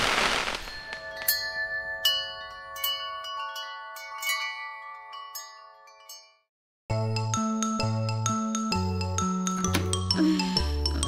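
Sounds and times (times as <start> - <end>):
tinkling wind chimes: 0.3 - 6.5
cartoon music with a beat: 6.9 - 11.0.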